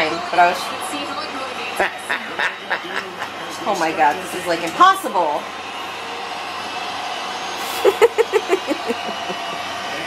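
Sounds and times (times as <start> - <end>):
person laughing: 1.8 - 3.3, 7.7 - 9.6.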